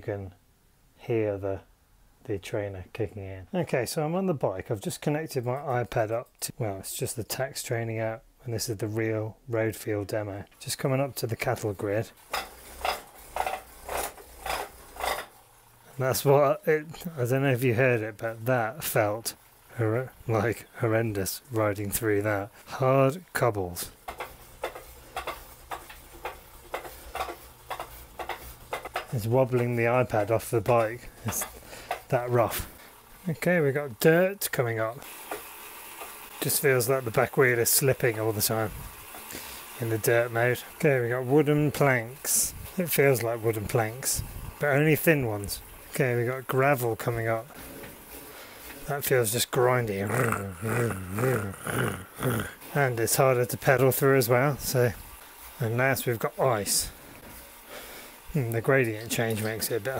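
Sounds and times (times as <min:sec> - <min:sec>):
trainer low hum: 0:50.0 - 0:52.6.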